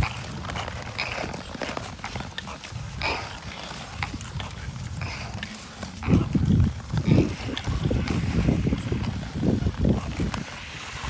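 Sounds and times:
ice skates scraping on ice: 0.0s - 11.0s
wind buffeting microphone: 0.0s - 11.0s.

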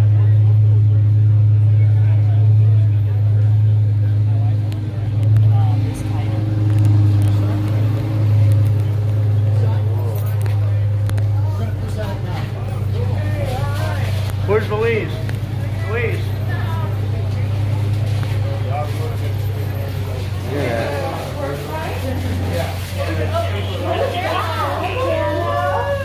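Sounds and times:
idling vehicle rumble: 0.0s - 26.0s
people talking: 0.0s - 26.0s.

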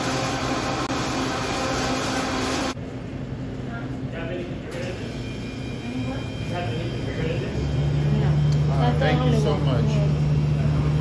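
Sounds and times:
blender running: 0.0s - 2.8s.

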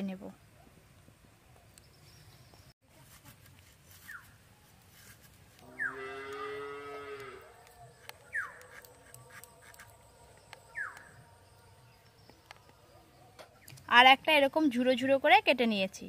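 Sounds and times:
cow mooing: 5.6s - 7.6s.

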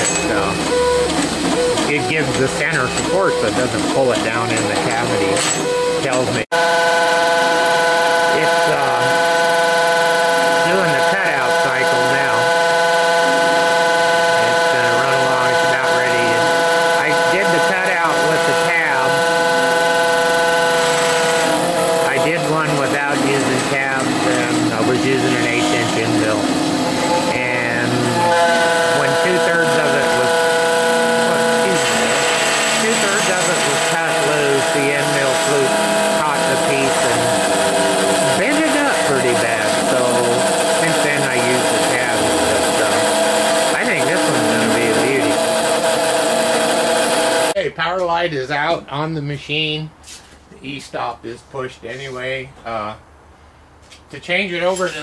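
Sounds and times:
machine axis whirring: 0.0s - 47.6s
spindle whine: 0.0s - 47.6s.

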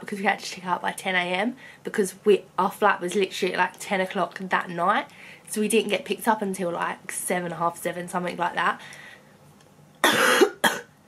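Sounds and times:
woman coughing: 10.0s - 11.0s.

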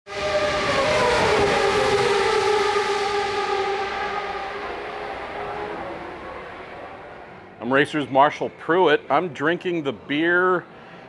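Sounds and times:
racing car engine at high revs: 0.1s - 7.3s.

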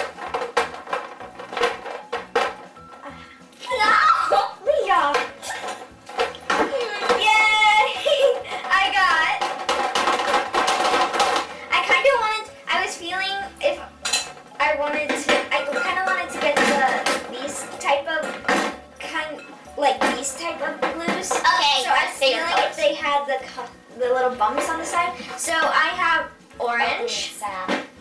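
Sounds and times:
plastic bottles clinking on glass: 0.0s - 4.0s, 4.8s - 26.2s.

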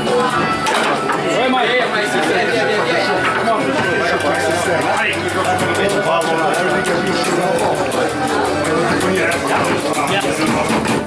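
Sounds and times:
hubbub of overlapping voices: 0.0s - 11.0s.

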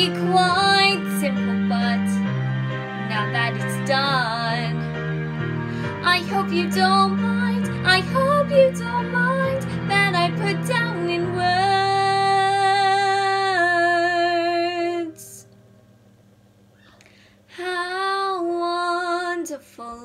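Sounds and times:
girl singing: 0.0s - 2.2s, 3.1s - 4.8s, 6.0s - 15.4s, 17.5s - 20.0s
backing track low chords: 0.0s - 16.7s.

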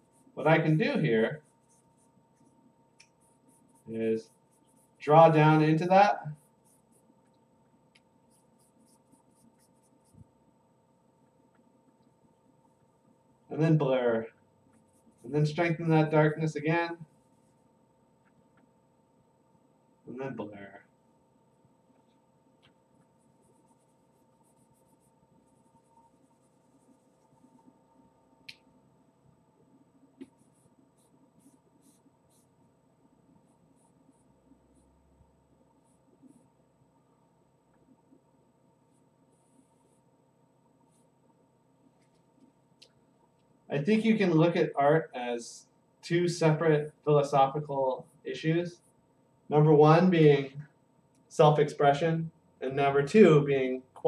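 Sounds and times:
charcoal scratching on paper: 0.0s - 5.0s, 6.2s - 7.1s, 8.2s - 10.3s, 23.2s - 27.7s, 30.3s - 32.6s.

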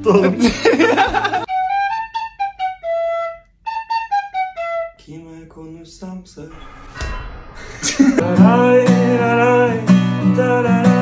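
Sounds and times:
tin whistle melody: 1.5s - 5.0s.

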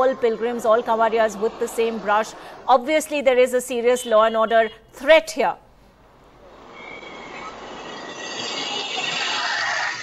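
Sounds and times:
motorbike traffic: 0.0s - 5.0s, 5.9s - 10.0s
faint high whine: 6.0s - 10.0s.

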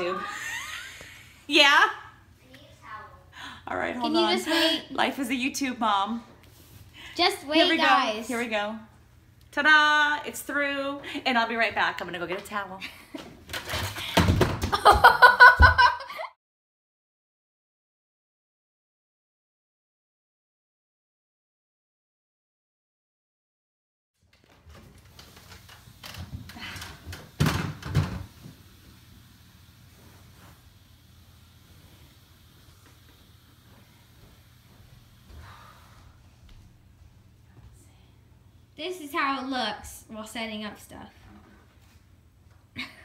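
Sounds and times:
woman laughing in high bursts: 0.1s - 1.4s, 14.7s - 16.3s.

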